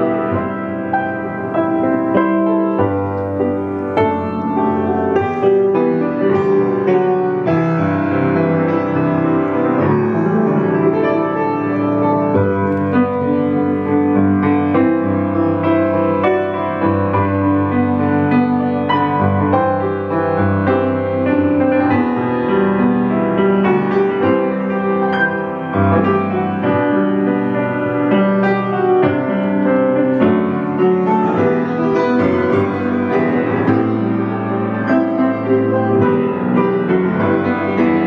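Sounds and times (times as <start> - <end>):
grand piano playing chords: 0.0 - 38.0.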